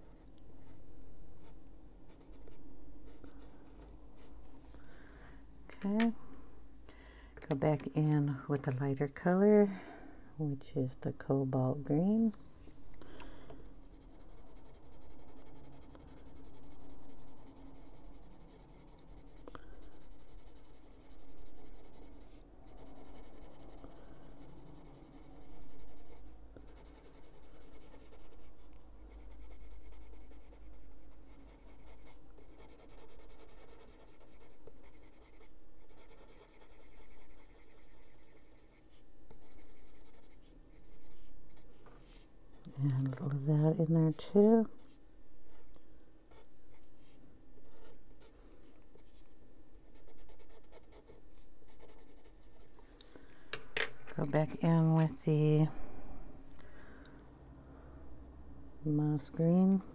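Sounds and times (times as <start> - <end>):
coloured pencil scratching on paper: 1.4 - 4.4, 13.8 - 42.3, 46.3 - 52.8.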